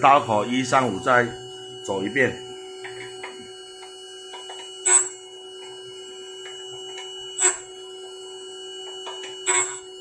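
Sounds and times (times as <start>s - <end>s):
sharpening machine motor hum: 0.0s - 10.0s
sharp grinding sound: 9.2s - 10.0s.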